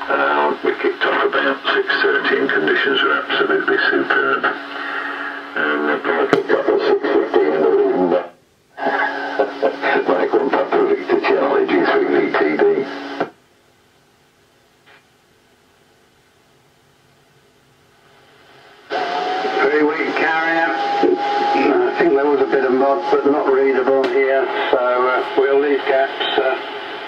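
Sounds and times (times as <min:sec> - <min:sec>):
radio voice transmission: 0:00.0 - 0:13.3, 0:19.4 - 0:27.0
steady tone: 0:19.0 - 0:27.0.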